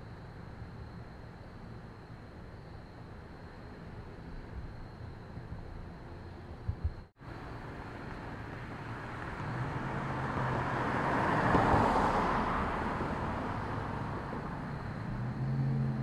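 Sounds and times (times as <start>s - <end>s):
low engine hum: 2.8s - 16.0s
car passing by: 7.9s - 16.0s.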